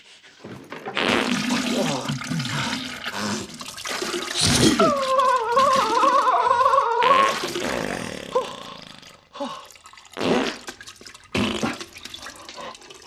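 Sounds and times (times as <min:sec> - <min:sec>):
wet farting into toilet: 0:00.4 - 0:06.4, 0:07.0 - 0:09.3, 0:10.0 - 0:12.6.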